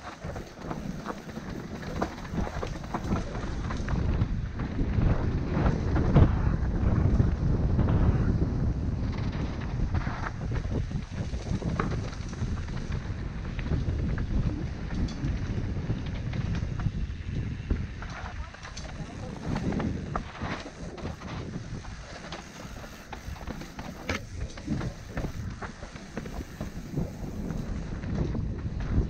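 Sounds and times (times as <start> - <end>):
bike knocks and rattles: 0.0 - 7.2, 8.9 - 29.0
bike tyres rumbling on dirt: 0.0 - 29.0
wind buffeting microphone: 0.0 - 29.0.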